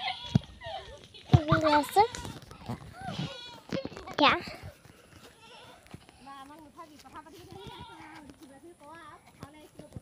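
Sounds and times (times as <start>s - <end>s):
goats bleating: 1.6s - 3.8s, 5.1s - 6.0s, 7.5s - 8.3s.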